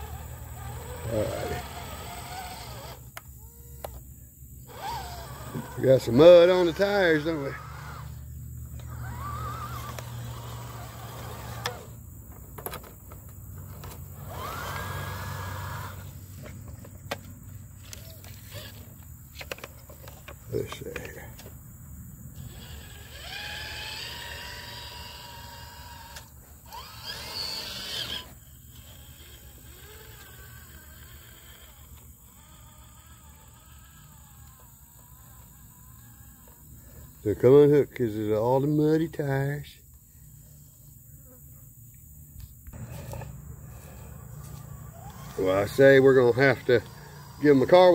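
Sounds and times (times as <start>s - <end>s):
electric motor and gears whining: 0.0s - 47.9s.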